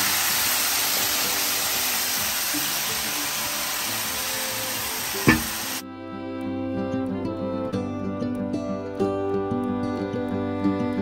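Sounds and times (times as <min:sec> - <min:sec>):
chicken sizzling in a pan: 0:00.0 - 0:05.8
guitar music: 0:01.2 - 0:11.0
sharp knock: 0:05.2 - 0:05.6.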